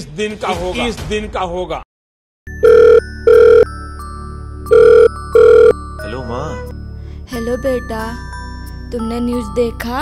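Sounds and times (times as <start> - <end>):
telephone ringing: 2.6 - 3.7, 4.7 - 5.8.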